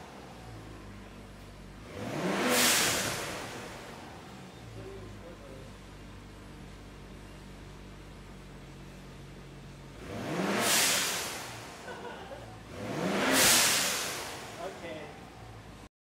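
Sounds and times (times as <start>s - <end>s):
car engine idling and revving: 0.0s - 15.9s
blow-off valve whoosh: 2.3s - 3.9s, 10.4s - 11.9s, 13.0s - 14.6s.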